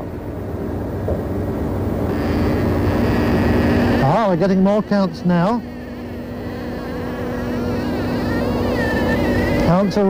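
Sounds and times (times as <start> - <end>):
scintillometer buzzing: 0.0 - 10.0.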